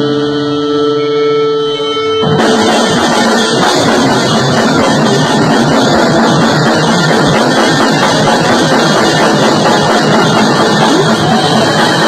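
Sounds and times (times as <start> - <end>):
rock band sustained drone: 0.0 - 12.0.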